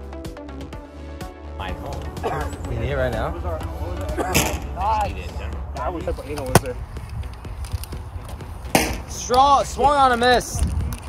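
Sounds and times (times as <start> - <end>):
people talking and calling out: 1.5 - 11.0
sharp crack of an impact: 4.3 - 4.8, 8.7 - 9.4.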